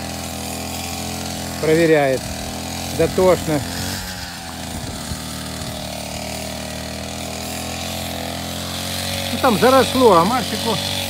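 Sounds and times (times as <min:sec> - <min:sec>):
string trimmer engine running: 0:00.0 - 0:11.0.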